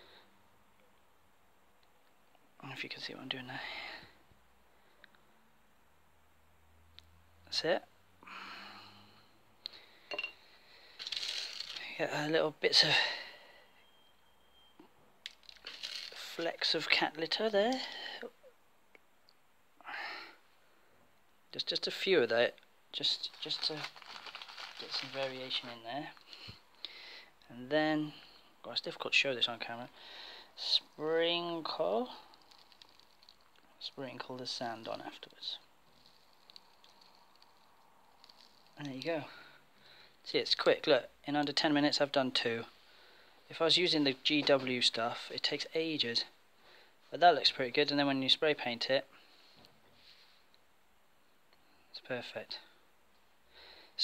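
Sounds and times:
jar clink: 0:10.1 - 0:10.4
gritty rattle of granules: 0:10.9 - 0:12.0, 0:15.2 - 0:17.0, 0:23.0 - 0:26.5, 0:31.4 - 0:39.3.

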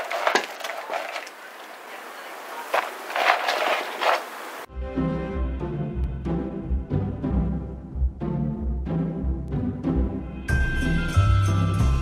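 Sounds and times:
string lights crackling rustle: 0:00.0 - 0:04.7.

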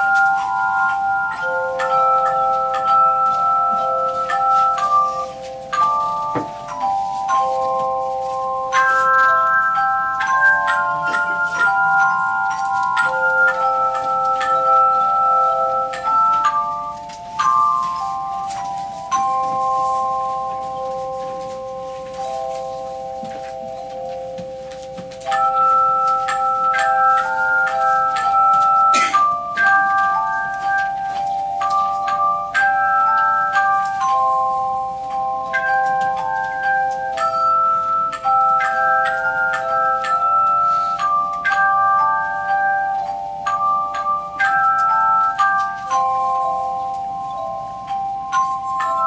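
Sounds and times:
handchimes ringing in chords: 0:00.0 - 0:49.0.

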